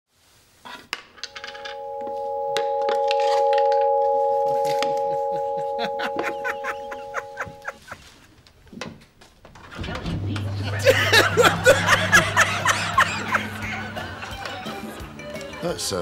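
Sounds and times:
sustained electronic chord: 1.6 - 7.7.

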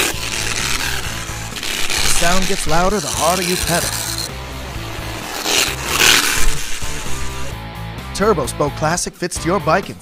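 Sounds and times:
card flapping against bicycle spokes: 0.0 - 7.5
background music: 0.0 - 10.0.

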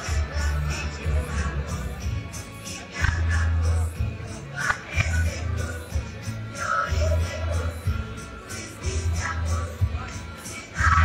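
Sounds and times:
music with steady bass line: 0.0 - 11.0.

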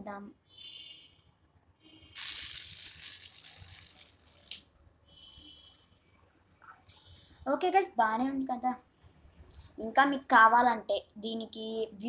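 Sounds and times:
wooden dominoes clattering on marble: 2.2 - 4.6.

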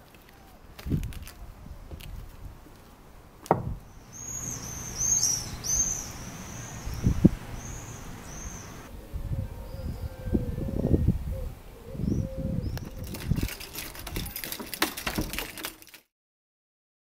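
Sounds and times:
low thuds and rumble: 3.5 - 3.9
small birds chirping: 3.8 - 8.9.

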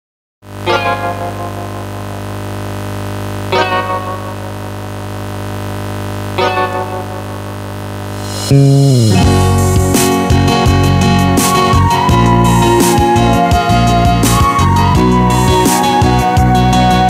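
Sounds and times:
low synthesizer chord held: 0.5 - 15.6
bright chord struck and ringing: 0.6 - 2.3, 3.6 - 4.7, 6.4 - 7.5.

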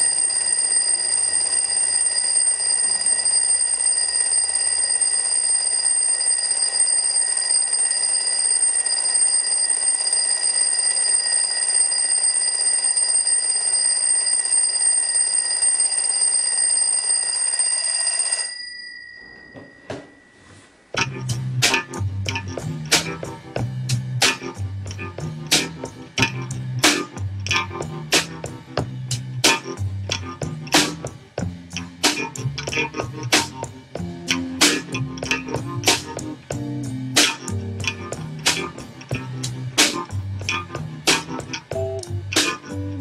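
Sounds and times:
alarm clock bell ringing: 0.0 - 20.7.

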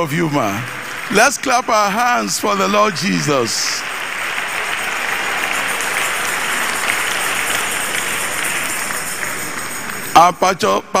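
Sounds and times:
audience applause: 0.0 - 10.4.

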